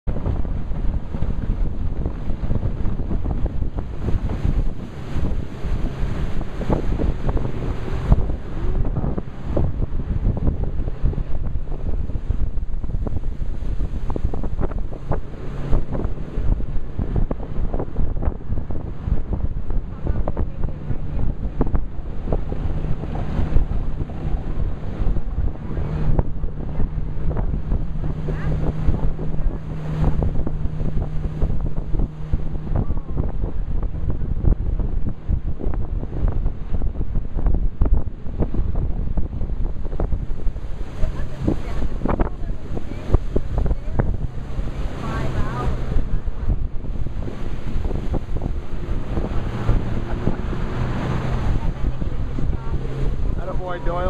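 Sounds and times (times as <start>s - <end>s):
outboard motor droning: 0.0s - 54.0s
water along boat hull: 0.0s - 54.0s
wind buffeting microphone: 0.0s - 54.0s.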